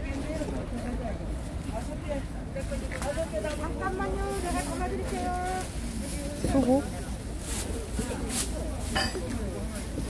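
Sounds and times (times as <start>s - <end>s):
crowd and street hum: 0.0s - 10.0s.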